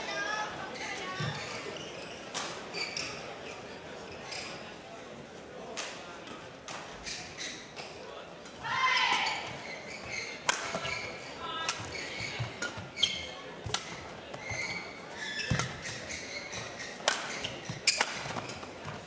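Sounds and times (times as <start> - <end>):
crowd murmur: 0.0 - 19.0
shoes squeaking on court floor: 0.6 - 4.8, 7.0 - 8.0, 9.2 - 19.0
racket striking shuttlecock: 17.0 - 18.4.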